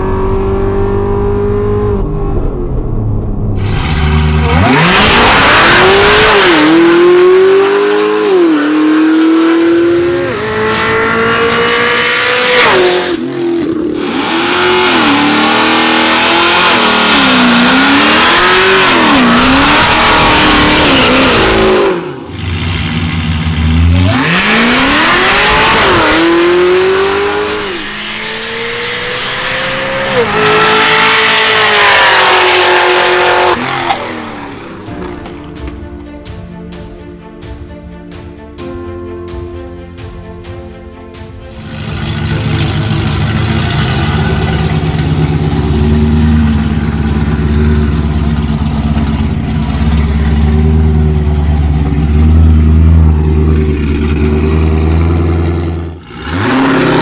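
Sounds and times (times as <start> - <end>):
car engine accelerating at full throttle: 0.0 - 35.1, 41.5 - 57.0
engine low rumble idling: 41.5 - 56.0.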